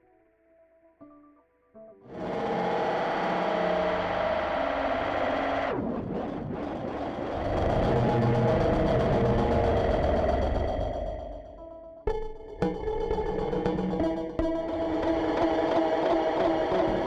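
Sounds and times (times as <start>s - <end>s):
deep rumble: 2.1s - 11.6s
experimental electronic drone: 2.1s - 17.0s.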